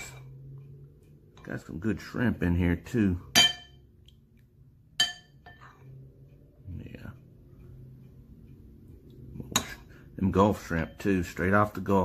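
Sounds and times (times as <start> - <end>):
low steady hum: 0.0 - 12.0
ceramic spoon clinking in bowl: 3.3 - 3.8, 5.0 - 5.8.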